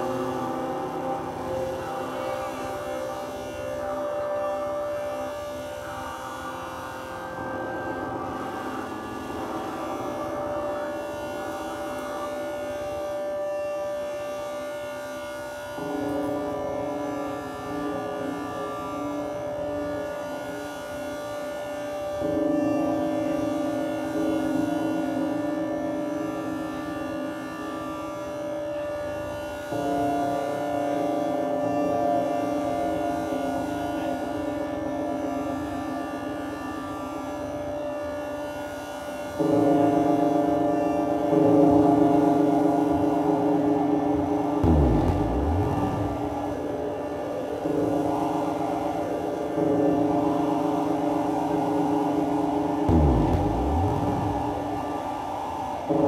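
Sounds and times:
drone music sustained tones: 0.0s - 56.0s.

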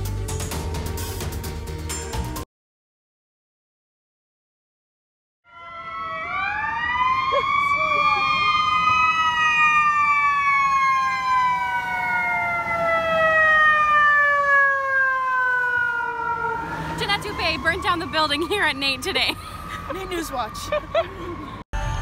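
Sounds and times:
fire engine siren wailing: 5.5s - 22.0s.

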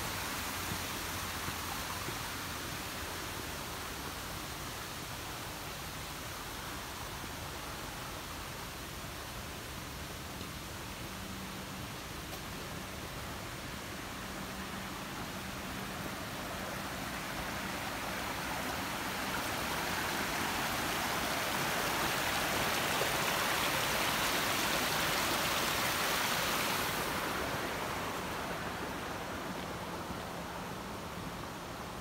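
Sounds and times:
stream rushing over rocks: 0.0s - 32.0s.

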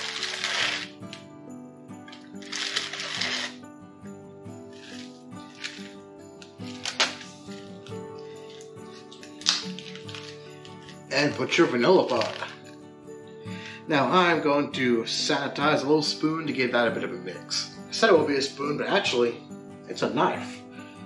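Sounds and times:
crackers falling into bucket: 0.0s - 1.2s, 2.1s - 3.6s, 4.8s - 7.6s, 8.5s - 11.3s, 12.0s - 12.6s
plastic bag rustling: 0.0s - 1.2s, 2.1s - 3.6s, 4.6s - 12.6s
background music: 0.0s - 21.0s.

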